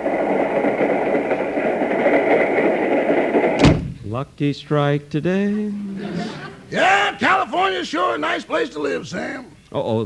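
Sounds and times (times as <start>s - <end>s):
train rushing rumble: 0.0s - 4.2s
sharp knock: 3.6s - 4.0s.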